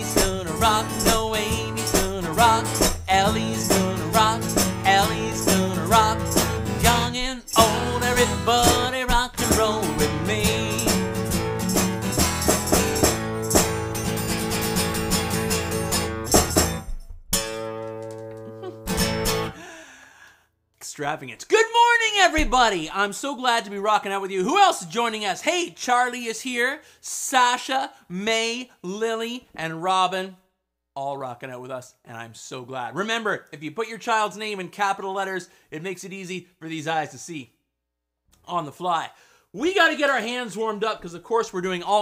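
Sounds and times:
man singing: 0:00.0 - 0:11.3
acoustic guitar strumming: 0:00.0 - 0:19.6.

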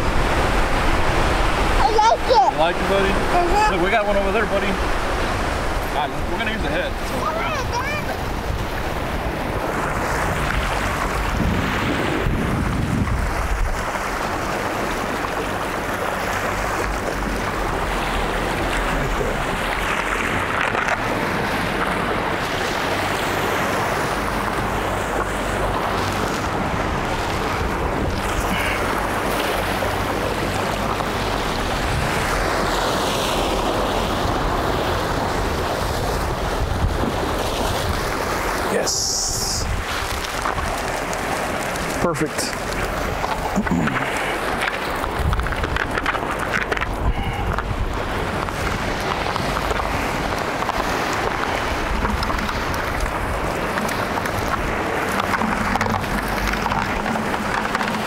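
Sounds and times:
waves breaking against rocks: 0:00.0 - 0:58.0
wind buffeting microphone: 0:00.0 - 0:58.0.

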